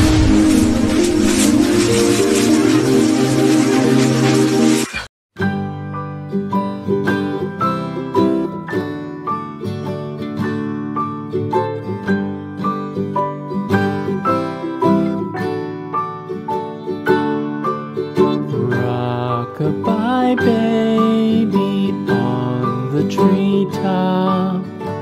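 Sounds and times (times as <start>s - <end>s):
plucked string instrumental music: 0.0s - 25.0s.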